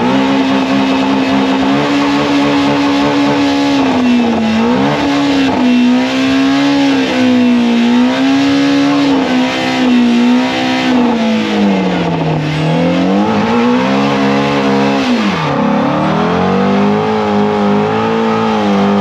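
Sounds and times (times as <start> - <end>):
car engine revving high: 0.0 - 19.0.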